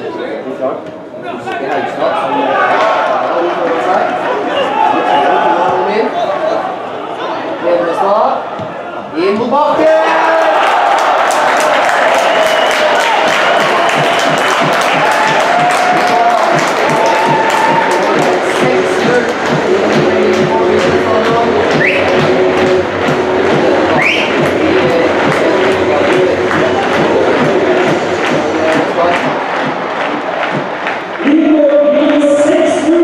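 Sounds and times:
crowd cheering: 1.2s - 33.0s
music with a steady beat: 13.3s - 31.1s.

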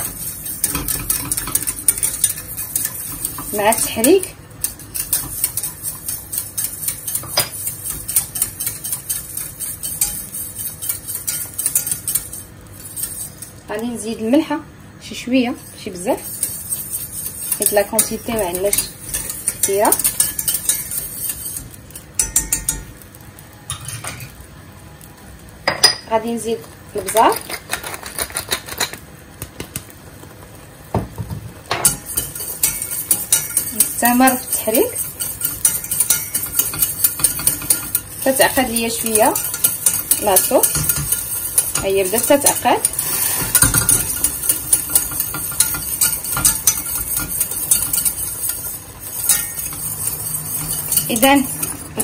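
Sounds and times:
whisk clicking against a pan: 0.0s - 13.6s, 16.0s - 23.0s, 31.8s - 52.0s
utensil scraping a saucepan: 0.0s - 14.0s, 15.5s - 23.0s, 31.8s - 52.0s.

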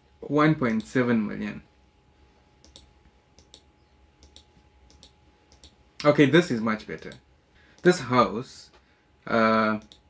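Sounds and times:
computer mouse clicking: 2.6s - 6.1s, 9.8s - 10.0s.

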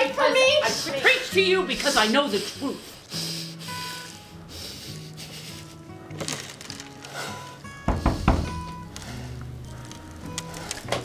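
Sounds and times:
heavy thuds: 7.8s - 9.2s.

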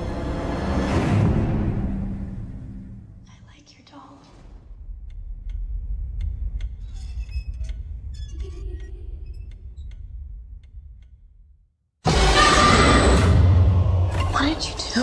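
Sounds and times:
faint whispering: 3.2s - 4.4s
sharp irregular clicks: 5.0s - 6.9s.

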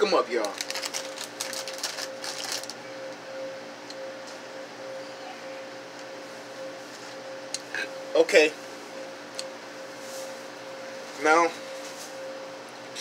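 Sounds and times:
drink cooler hum: 0.0s - 13.0s.

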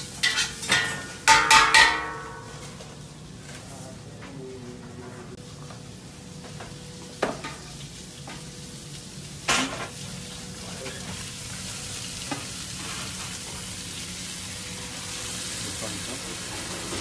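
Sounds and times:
fish sizzling in hot oil: 5.5s - 17.0s.

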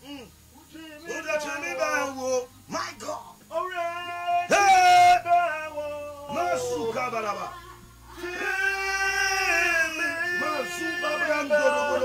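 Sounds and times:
man singing: 3.6s - 12.0s.

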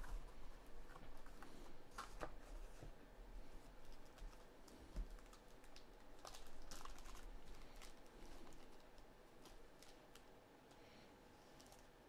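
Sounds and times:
plastic wrapper crinkling: 3.9s - 10.3s, 11.5s - 12.0s.

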